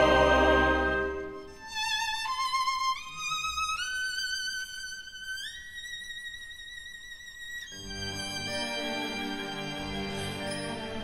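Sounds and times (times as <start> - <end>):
orchestra playing: 0.0 - 2.4, 7.8 - 11.0
violins playing soft melody: 0.0 - 11.0.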